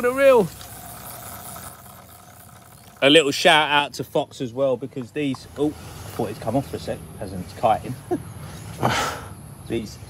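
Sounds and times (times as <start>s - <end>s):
fishing reel whirring: 0.0s - 3.7s.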